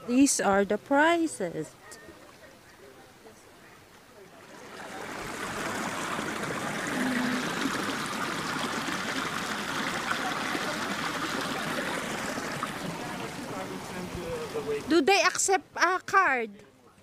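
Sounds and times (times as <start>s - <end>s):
water rushing down a channel: 4.2s - 14.9s.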